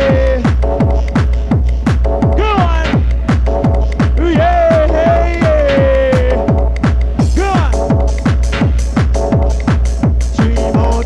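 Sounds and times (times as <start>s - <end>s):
deep bass: 0.0s - 11.0s
four-on-the-floor kick drum: 0.0s - 11.0s
synth chords: 0.0s - 11.0s
trance dance music: 0.0s - 11.0s.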